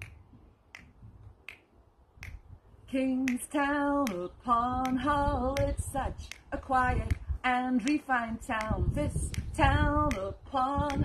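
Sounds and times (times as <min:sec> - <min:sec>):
finger snaps: 0:00.0 - 0:02.5, 0:03.2 - 0:09.5, 0:10.1 - 0:11.0
woman singing unaccompanied: 0:02.9 - 0:11.0.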